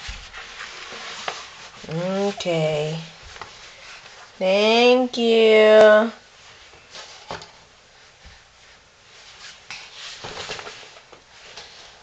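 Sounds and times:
fabric rustling and rubbing: 0.0 - 12.0.

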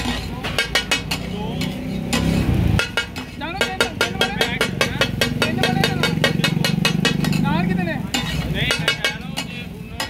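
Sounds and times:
metal spatulas striking griddle: 0.0 - 10.0.

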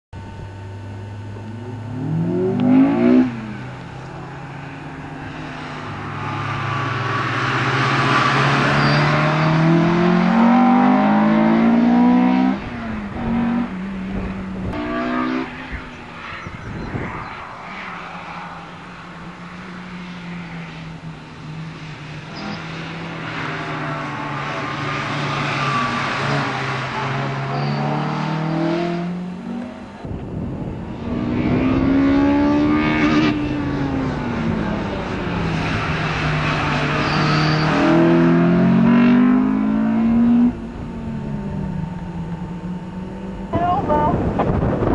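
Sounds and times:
car engine passing at speed: 0.4 - 44.9.

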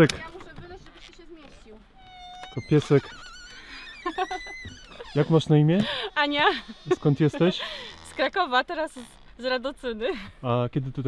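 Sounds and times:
animal whining cries: 2.0 - 5.5.

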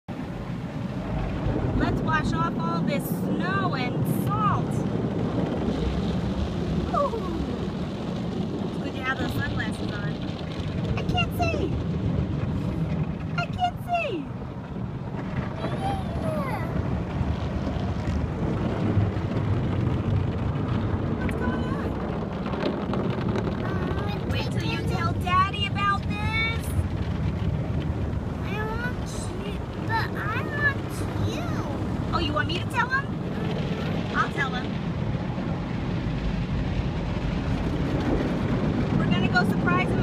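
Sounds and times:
car wash water spray and machinery: 0.1 - 13.5, 14.2 - 40.0
child's high vocal sounds: 15.6 - 16.8.

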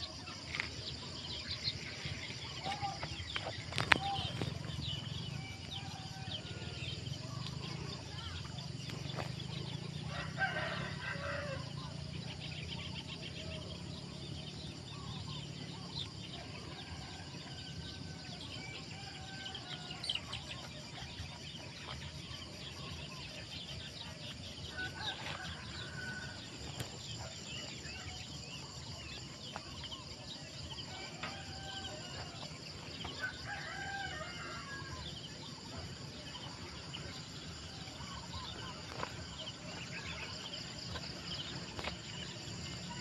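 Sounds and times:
rooster crowing: 10.1 - 11.8, 24.7 - 26.5, 30.9 - 35.0.

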